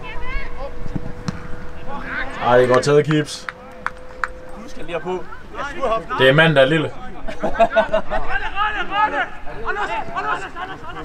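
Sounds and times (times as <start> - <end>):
outdoor background noise: 0.0 - 11.0
players shouting: 0.0 - 11.0.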